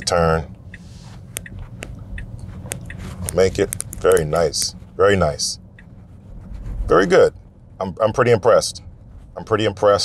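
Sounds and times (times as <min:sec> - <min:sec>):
turn signal ticking: 0:00.0 - 0:06.2
road and tyre rumble: 0:00.0 - 0:10.0.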